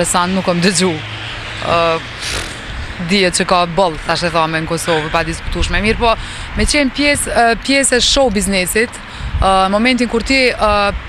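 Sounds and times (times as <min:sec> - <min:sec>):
city traffic rumble: 0:00.0 - 0:11.0
brief hiss: 0:02.2 - 0:02.6.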